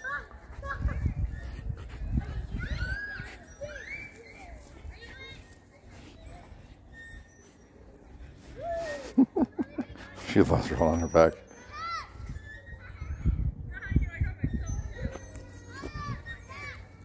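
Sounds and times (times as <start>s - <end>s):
wind rumble on microphone: 0.5s - 3.7s, 12.1s - 17.0s.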